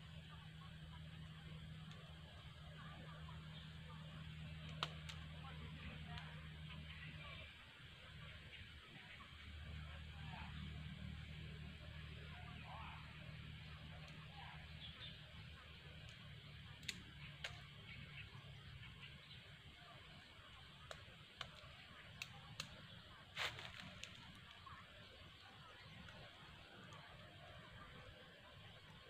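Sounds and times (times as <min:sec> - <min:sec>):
low hum: 0:00.0 - 0:29.0
outdoor background hiss: 0:00.0 - 0:29.0
small sharp clicks and crackles: 0:00.9 - 0:07.4, 0:15.7 - 0:29.0.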